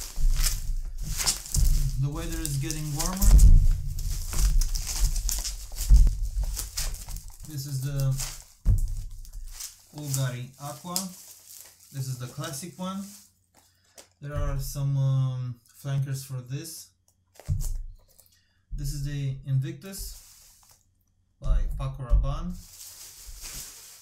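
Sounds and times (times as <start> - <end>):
dull handling thumps: 0.0 - 12.6, 21.4 - 23.7
bubble wrap crinkling: 0.0 - 14.2, 19.9 - 20.9, 22.6 - 24.0.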